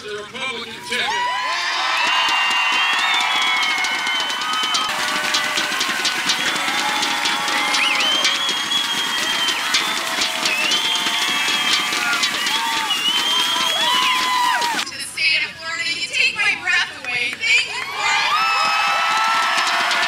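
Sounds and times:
crowd cheering and shouting: 0:00.7 - 0:14.9, 0:17.6 - 0:20.0
crowd clapping: 0:01.1 - 0:14.9, 0:17.0 - 0:20.0.

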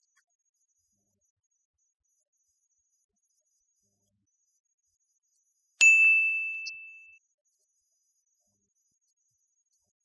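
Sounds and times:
bright bell-like ding: 0:05.8 - 0:07.2.

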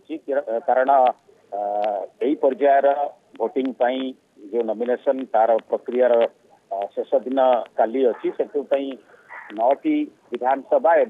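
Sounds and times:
narrator reading: 0:00.0 - 0:11.0.

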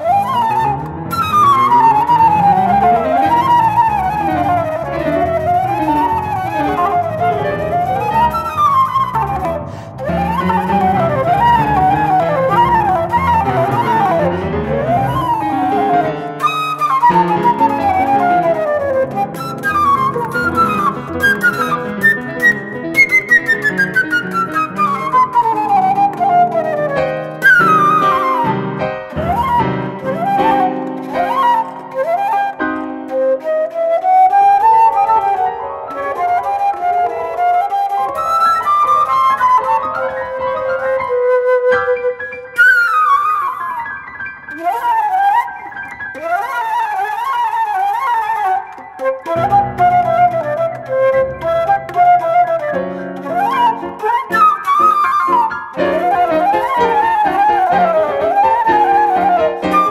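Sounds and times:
flute runs: 0:00.0 - 0:59.9
piano notes and chords: 0:00.0 - 0:59.9.

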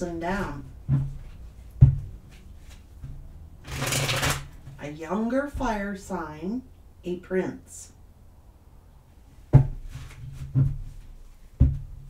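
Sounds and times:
cards riffle shuffled: 0:03.7 - 0:04.5.

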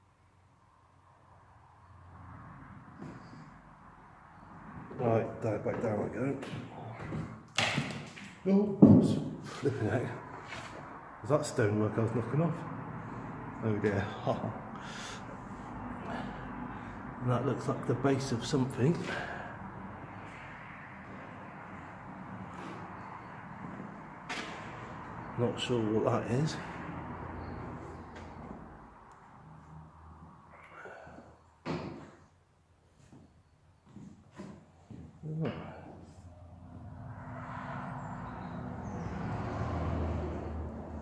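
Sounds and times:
vehicle passing by: 0:00.8 - 0:08.4, 0:09.0 - 0:31.4, 0:35.2 - 0:41.0.

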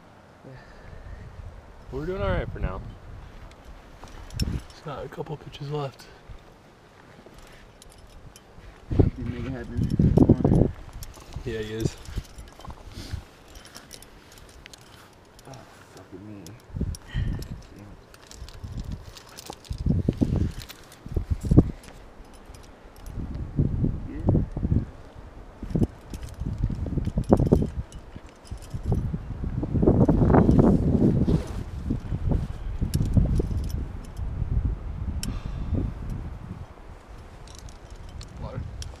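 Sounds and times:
wind rumble on microphone: 0:00.8 - 0:05.1, 0:07.3 - 0:15.7, 0:16.4 - 0:39.0
metal climbing gear clinking: 0:03.4 - 0:23.4, 0:24.5 - 0:34.3, 0:35.2 - 0:39.0.

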